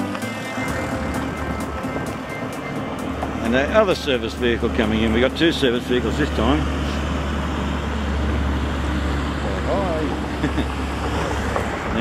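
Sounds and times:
road and wind noise hiss: 0:00.0 - 0:12.0
van engine rumble: 0:00.0 - 0:12.0.

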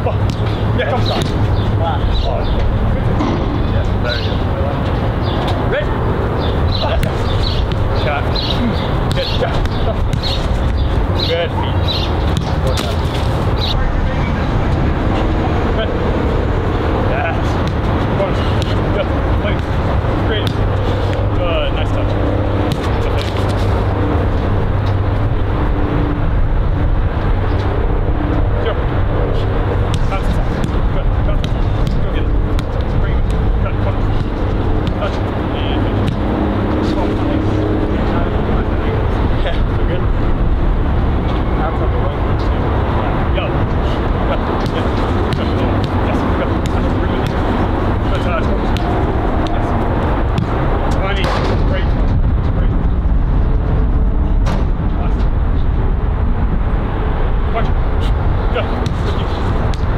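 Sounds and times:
wind rumble on microphone: 0:00.0 - 0:59.9
football being kicked: 0:00.2 - 0:01.4, 0:09.1 - 0:10.5, 0:20.4 - 0:20.7, 0:36.0 - 0:36.3, 0:44.6 - 0:47.5, 0:58.8 - 0:59.9.

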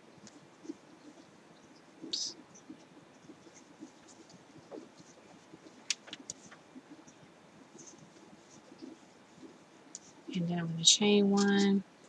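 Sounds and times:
yarn rustling with crochet hook: 0:00.2 - 0:11.8.

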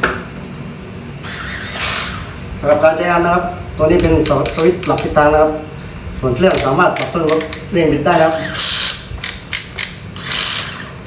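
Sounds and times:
capping tool motor whirring: 0:01.2 - 0:02.4, 0:06.4 - 0:11.0.

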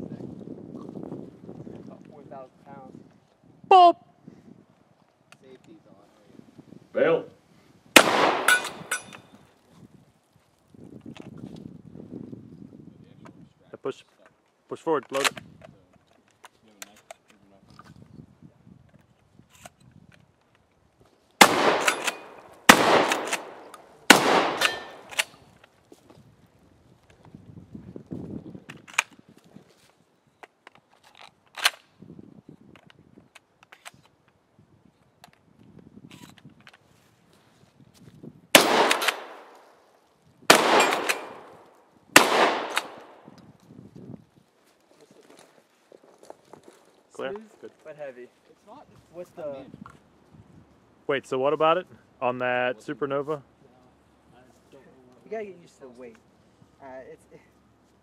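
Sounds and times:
shotgun shots: 0:08.0 - 0:09.2, 0:21.4 - 0:25.4, 0:38.6 - 0:39.7, 0:40.5 - 0:43.3
shells clattering while loading: 0:08.0 - 0:09.4, 0:21.7 - 0:25.4, 0:38.6 - 0:39.7, 0:40.5 - 0:41.6, 0:42.4 - 0:43.2.

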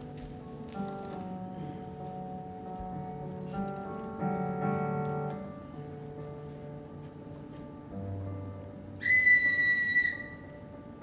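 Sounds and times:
faint background music: 0:00.0 - 0:11.0
high steady whistle-like note: 0:09.0 - 0:10.7.

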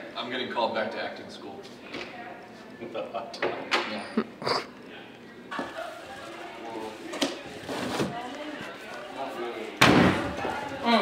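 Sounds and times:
loud slam: 0:09.8 - 0:10.3.

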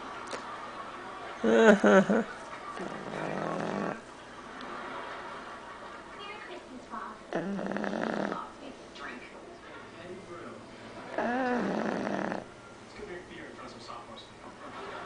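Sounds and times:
dog snoring: 0:02.8 - 0:04.1, 0:07.3 - 0:08.5, 0:11.1 - 0:12.6.

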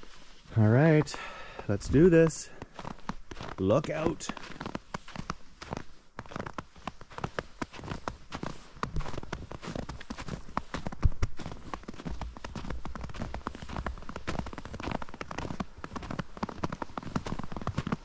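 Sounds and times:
footsteps crunching through snow: 0:00.0 - 0:18.0.

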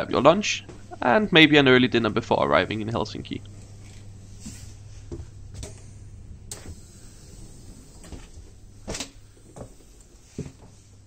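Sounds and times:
steady low hum: 0:00.0 - 0:11.0
train sliding doors opening: 0:06.5 - 0:10.6.

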